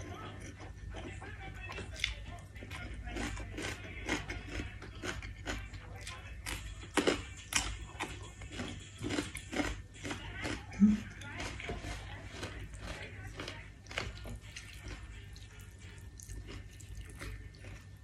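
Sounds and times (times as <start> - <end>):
chewing: 0.0 - 18.0
steady low hum: 0.0 - 18.0.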